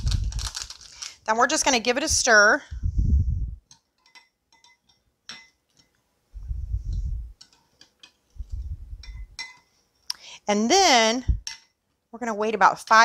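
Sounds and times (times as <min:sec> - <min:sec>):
dull low thumps: 0:02.1 - 0:03.6, 0:06.4 - 0:07.4, 0:08.4 - 0:09.4, 0:11.2 - 0:11.5
metal utensil clinking on glass: 0:04.0 - 0:05.6, 0:09.0 - 0:09.7.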